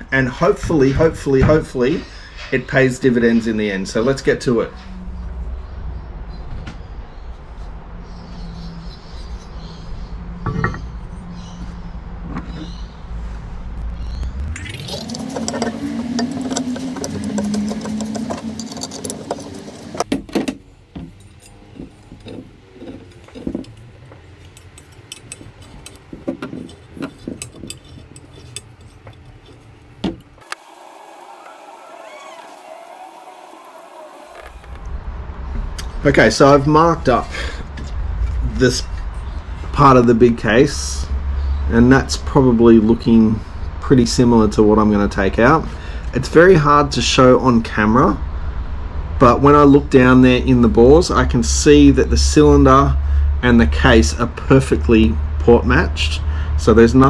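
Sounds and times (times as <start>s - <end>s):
low hum: 13.0s - 20.0s
metal parts clinking on workbench: 17.5s - 19.6s.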